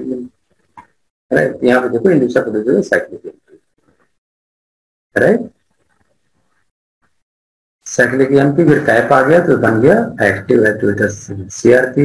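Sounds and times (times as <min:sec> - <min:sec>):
man speaking: 0:00.0 - 0:00.3, 0:01.3 - 0:03.6, 0:05.2 - 0:05.6, 0:07.8 - 0:12.0.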